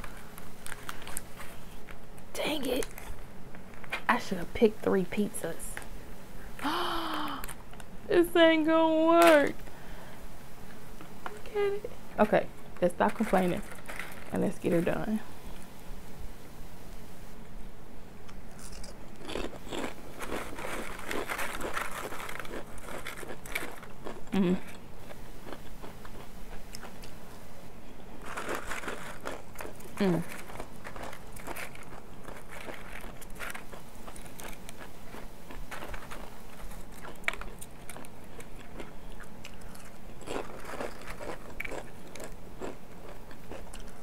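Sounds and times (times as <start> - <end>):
plastic packaging crinkling: 12.8 - 14.9, 20.2 - 24.0, 28.2 - 34.9
tortilla chips crunching: 12.9 - 14.5, 18.3 - 24.8, 28.2 - 44.0.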